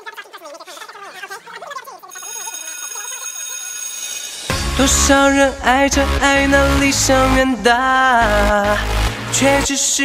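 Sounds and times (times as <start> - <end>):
steady high ringing tone: 2.1 - 4.6.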